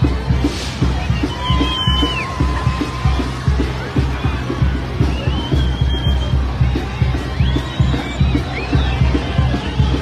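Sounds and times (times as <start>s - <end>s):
carnival crowd: 0.0s - 10.0s
fast bass drum beat: 0.0s - 10.0s
festive band music: 0.0s - 10.0s.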